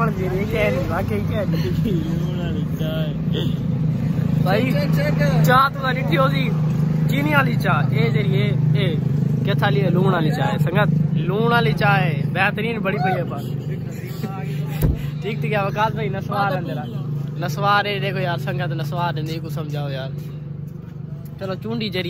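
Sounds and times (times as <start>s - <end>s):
young men talking and laughing: 0.0s - 22.0s
sharp knock: 14.8s - 15.1s.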